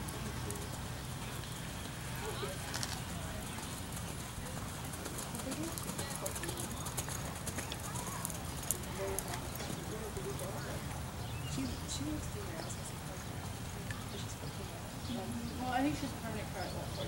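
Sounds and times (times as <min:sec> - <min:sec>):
indistinct voices talking: 0:00.0 - 0:17.0.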